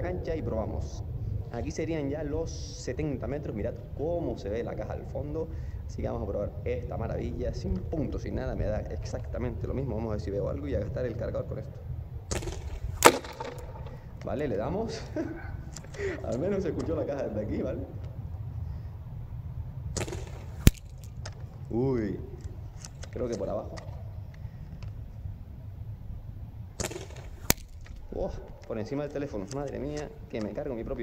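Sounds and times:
airsoft rifle shot crack: 12.3 - 14.1, 19.9 - 21.4, 26.8 - 28.4
soft noise before shot: 12.3 - 14.6, 19.8 - 25.4, 26.8 - 31.0.

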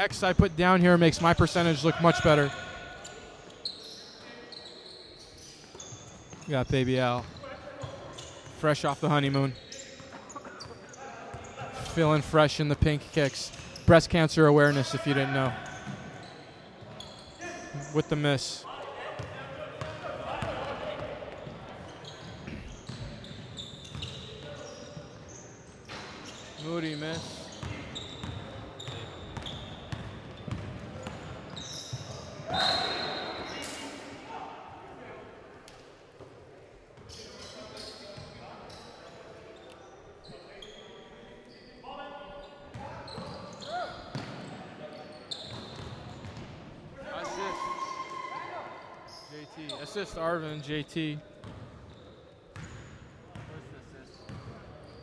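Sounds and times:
players calling: 0.0 - 5.6, 6.3 - 18.6, 31.2 - 33.8, 43.0 - 51.2
basketball bouncing on wooden court: 19.2 - 20.0, 27.6 - 31.3, 43.1 - 44.4, 45.5 - 46.6, 51.4 - 51.7, 54.3 - 54.5.

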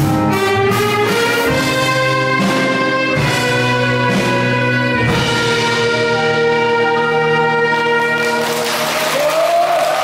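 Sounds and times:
saxophone and brass band playing: 0.0 - 10.0.

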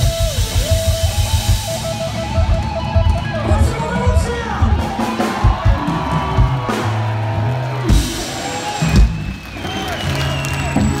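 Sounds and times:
drum kit strokes: 0.0 - 9.4
bass guitar notes: 0.0 - 11.0.

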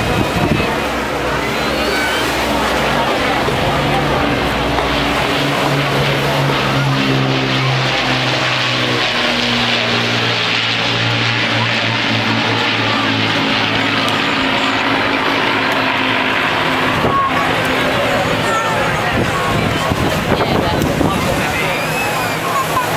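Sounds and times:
propeller aircraft flying past: 0.0 - 22.9.

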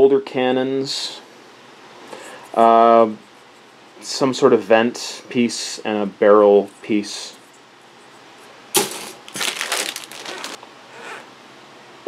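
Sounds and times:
plastic bags crinkling: 8.8 - 10.6.

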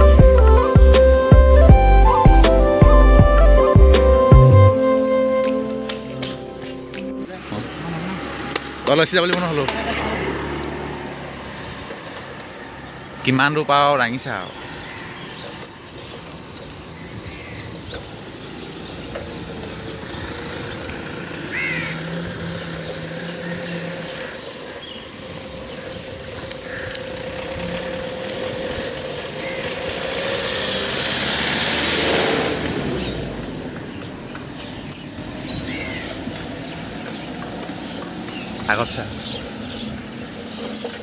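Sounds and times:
steady street hum: 0.0 - 41.0
vehicle passing: 0.0 - 41.0
short bird calls: 21.4 - 27.2.

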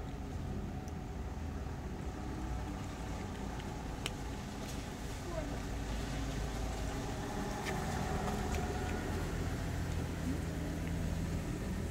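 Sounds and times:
vehicle engine idling: 0.0 - 11.9.

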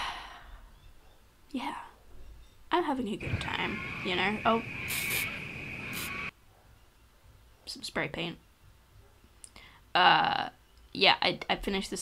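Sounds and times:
spray paint can hissing: 4.9 - 6.2.

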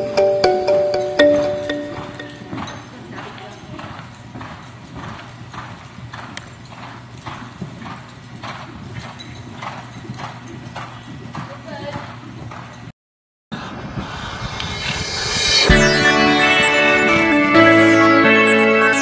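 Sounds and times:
horse hoofbeats on dirt: 1.9 - 12.9.

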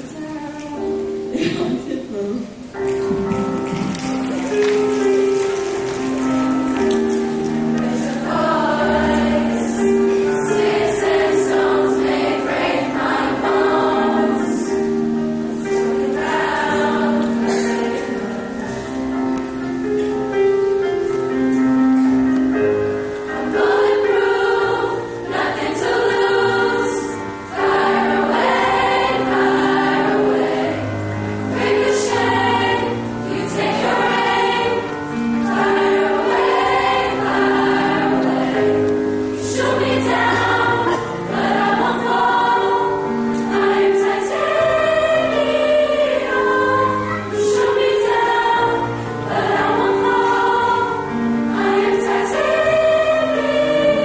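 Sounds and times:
choir singing in parts: 4.5 - 20.0, 22.0 - 54.0.

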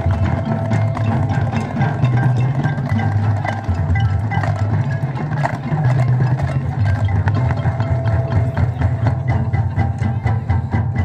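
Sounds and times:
mallet instruments: 0.0 - 11.0
percussion strikes: 0.0 - 11.0.

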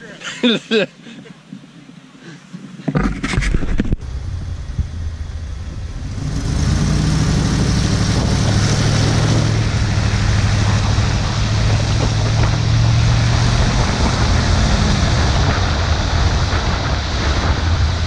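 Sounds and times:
wind on microphone: 2.6 - 18.0
truck engine pulling away: 4.0 - 18.0.

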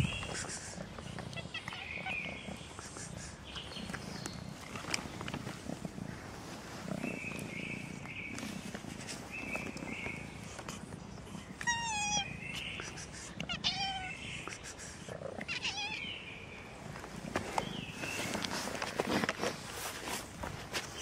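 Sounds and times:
low cat purr: 0.0 - 11.7
cat meowing: 11.6 - 12.4, 13.4 - 14.2, 15.4 - 16.0.

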